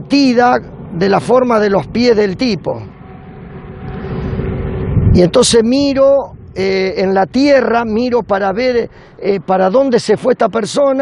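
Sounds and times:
road vehicle approaching: 0.0s - 11.0s.

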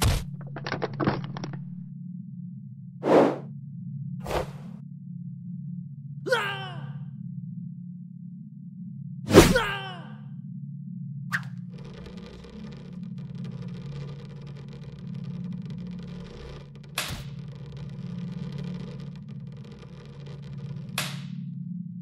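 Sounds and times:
steady low hum: 1.6s - 22.0s.

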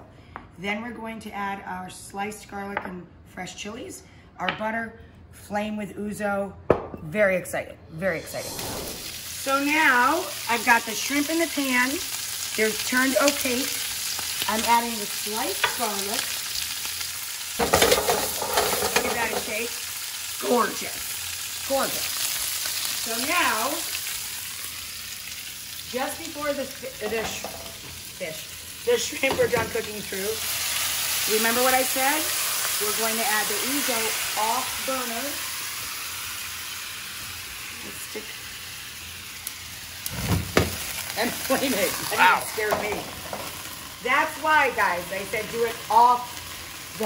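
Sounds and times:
rush of flame igniting: 8.3s - 9.5s
shrimp sizzling in oil: 8.4s - 47.0s.

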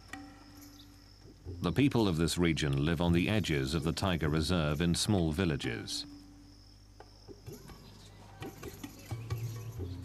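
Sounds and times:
high insect trill: 0.0s - 10.0s.

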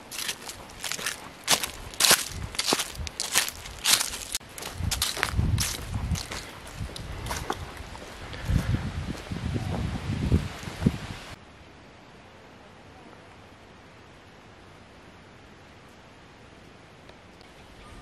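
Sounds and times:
footsteps crunching on leaves: 0.0s - 9.9s
faint steady hiss: 9.0s - 18.0s.

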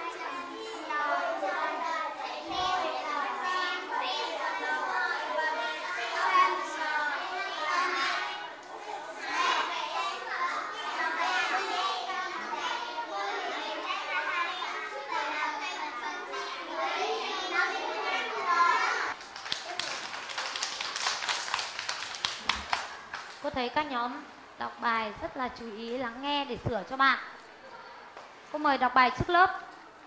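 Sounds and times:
children reading aloud: 0.0s - 21.1s
class clapping hands: 19.1s - 23.5s.

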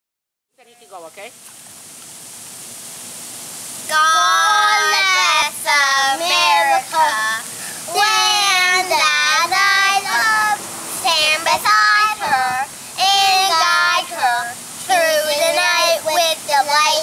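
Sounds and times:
boys singing high notes: 3.9s - 17.0s.

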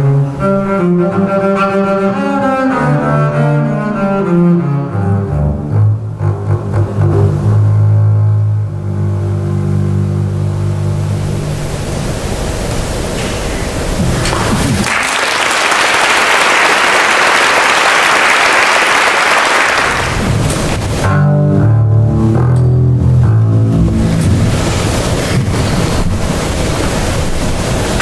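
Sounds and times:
double bass bowing low note: 0.0s - 12.3s, 20.9s - 26.4s
audience applauding: 14.2s - 20.8s.

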